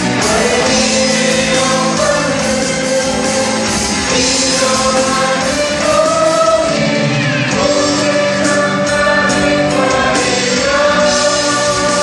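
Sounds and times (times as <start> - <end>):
acoustic guitar: 0.0 - 12.0
electric guitar: 0.0 - 12.0
electronic drums: 0.0 - 12.0
group singing into microphones: 0.0 - 12.0
keyboard: 0.0 - 12.0.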